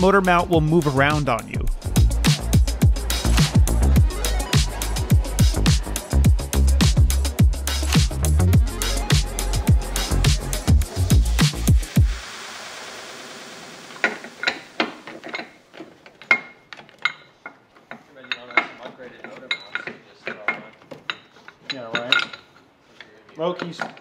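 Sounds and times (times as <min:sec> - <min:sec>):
hiss: 0:11.4 - 0:15.0
light metallic clinks: 0:15.2 - 0:22.6.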